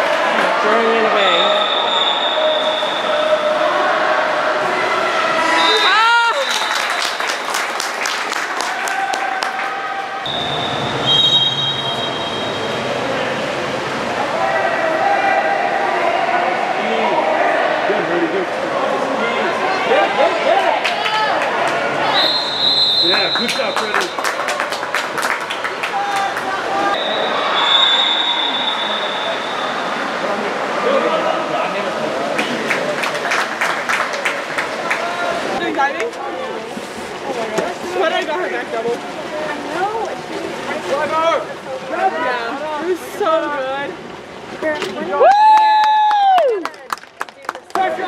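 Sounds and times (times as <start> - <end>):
spectators shouting: 0.0 - 6.7
crowd noise: 0.0 - 48.0
referee's whistle blast: 1.4 - 3.1, 5.5 - 6.7, 10.2 - 12.7, 22.1 - 23.8, 27.0 - 29.8
handclaps: 6.4 - 9.7, 23.4 - 26.5, 32.4 - 35.0, 45.3 - 48.0.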